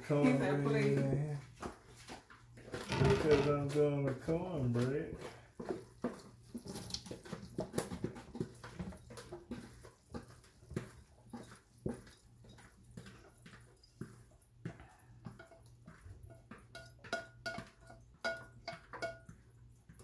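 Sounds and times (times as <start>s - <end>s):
kitchen utensils clicking and tapping: 2.6s - 20.0s.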